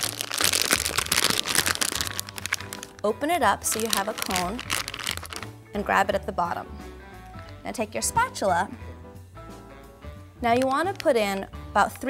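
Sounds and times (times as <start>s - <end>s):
plastic bag crinkling: 0.0s - 5.5s.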